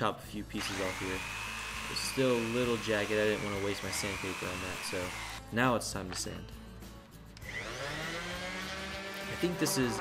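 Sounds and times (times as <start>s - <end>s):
electric sander running: 0.7s - 5.4s, 7.5s - 10.0s.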